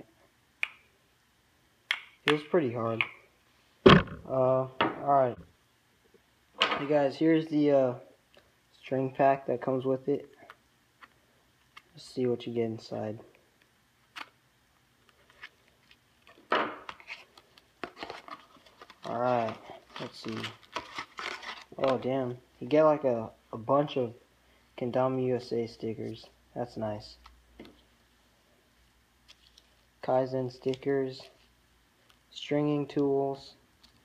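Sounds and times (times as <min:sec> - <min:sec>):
paper packaging ripping: 0:16.9 - 0:22.0.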